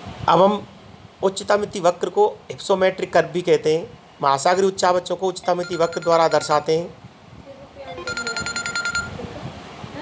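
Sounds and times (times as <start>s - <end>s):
pulsing electronic ringtone beep: 5.4s - 6.7s, 7.9s - 9.2s.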